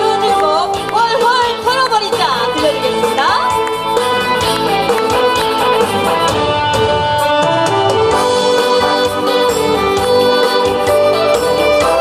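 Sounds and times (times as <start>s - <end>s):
instrumental pop music over speaker: 0.0s - 12.0s.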